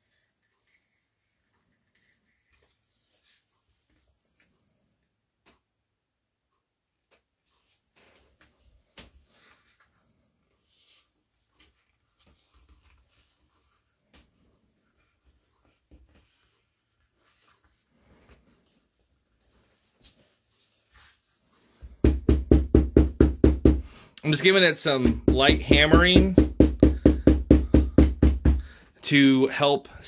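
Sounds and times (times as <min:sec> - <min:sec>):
handling stiff leather pieces: 0:07.1 - 0:22.6.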